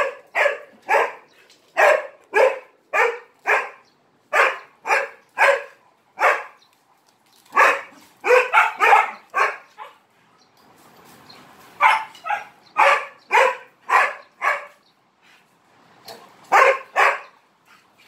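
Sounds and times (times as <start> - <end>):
dog barking: 0.0 - 6.6, 7.6 - 10.0, 11.8 - 14.8, 16.1 - 17.4.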